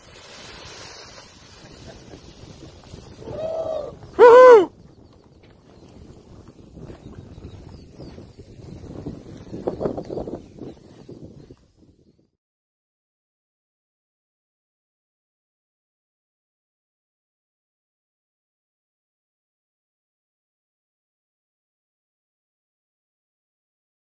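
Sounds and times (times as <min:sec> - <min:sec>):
wind noise on microphone: 0:00.0 - 0:12.4
high cheering shouts: 0:03.3 - 0:04.7.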